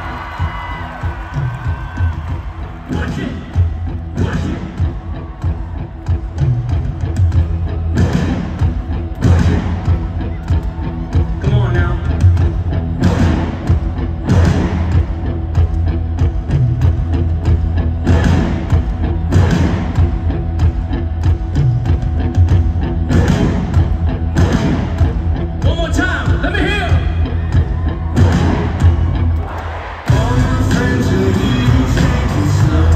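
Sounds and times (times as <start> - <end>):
live rock band: 0.0 - 32.9
drum and cymbal accents: 30.0 - 32.9.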